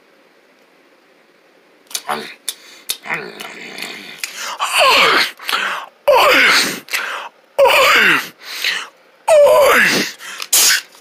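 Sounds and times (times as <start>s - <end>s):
person moaning: 3.0s - 10.2s
short hissing burst: 10.5s - 10.9s.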